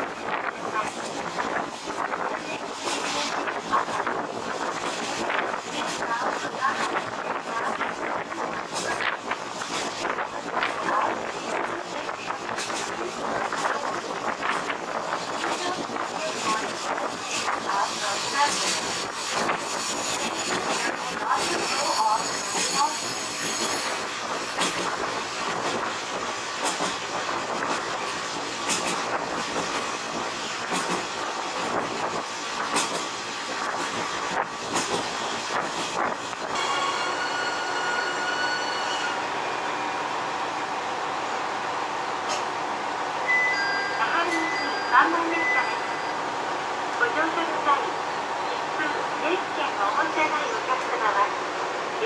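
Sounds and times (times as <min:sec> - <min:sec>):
train wheel and wind noise: 0:00.0 - 0:52.0
steel wheels squealing: 0:17.3 - 0:24.2, 0:36.6 - 0:39.9, 0:43.3 - 0:46.4.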